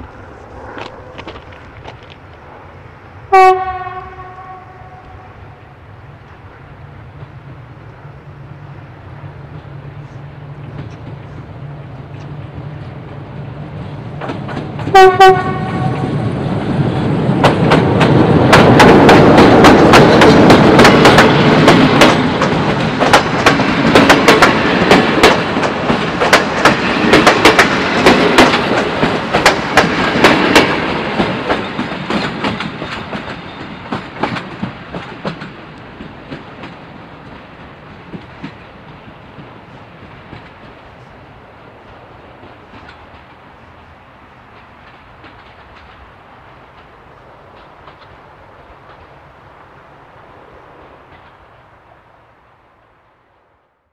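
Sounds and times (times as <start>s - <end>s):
train wheels clicking over rail joints: 0.0s - 2.5s, 8.7s - 41.1s, 41.8s - 49.2s, 50.8s - 51.7s
diesel locomotive engine: 0.0s - 53.8s.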